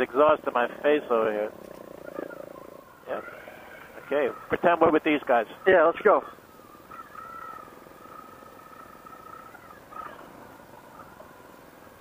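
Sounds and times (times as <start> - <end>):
steady high whine: 0.0 - 12.0.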